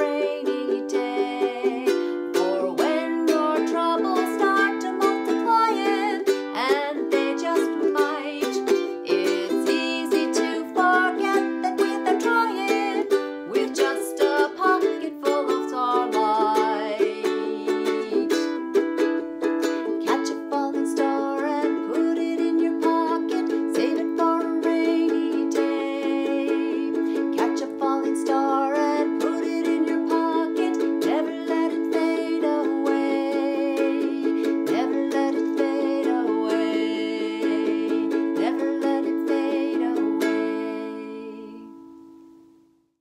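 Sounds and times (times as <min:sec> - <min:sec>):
woman singing: 0:00.0 - 0:19.0, 0:19.6 - 0:42.2
strummed ukulele: 0:00.0 - 0:42.6.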